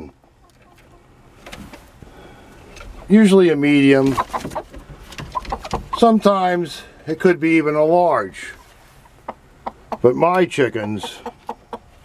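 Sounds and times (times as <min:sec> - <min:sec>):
hen clucking: 0:00.0 - 0:01.8, 0:02.9 - 0:06.6, 0:08.1 - 0:12.0.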